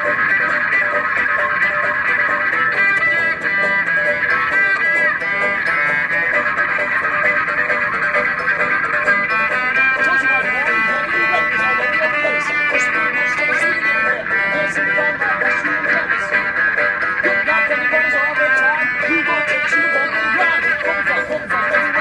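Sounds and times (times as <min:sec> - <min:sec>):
banjo picking quick runs: 0:00.0 - 0:22.0
bowed string instrument sliding: 0:00.0 - 0:22.0.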